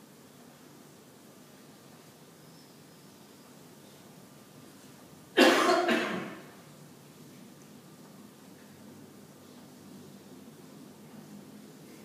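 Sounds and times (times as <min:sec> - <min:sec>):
person coughing: 0:05.4 - 0:06.5.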